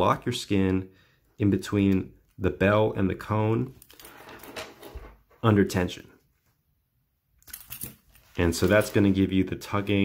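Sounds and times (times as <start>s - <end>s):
metal snap hook and key ring rattling: 7.4s - 8.1s.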